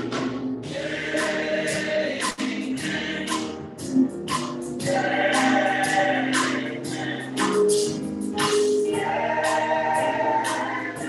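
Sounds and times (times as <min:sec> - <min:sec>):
choir singing: 0:00.0 - 0:04.1, 0:04.8 - 0:11.0
drum kit with cymbal strokes: 0:00.0 - 0:11.0
keyboard chords: 0:00.0 - 0:11.0.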